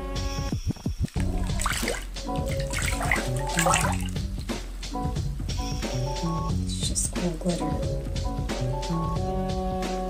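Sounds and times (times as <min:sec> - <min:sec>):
background music: 0:00.0 - 0:10.0
water sloshing in bathtub: 0:01.1 - 0:04.7.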